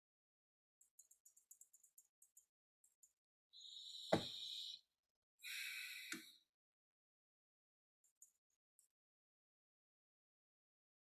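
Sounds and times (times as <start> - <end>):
faint breaths: 5.4 - 6.4.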